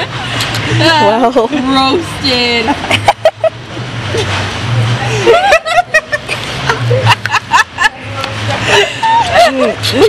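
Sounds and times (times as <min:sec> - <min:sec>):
women laughing: 0:02.5 - 0:04.4, 0:05.0 - 0:10.0.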